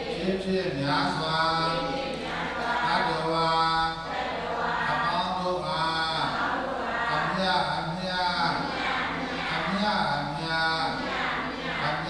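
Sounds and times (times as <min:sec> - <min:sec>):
men chanting on held notes: 0:00.0 - 0:12.0.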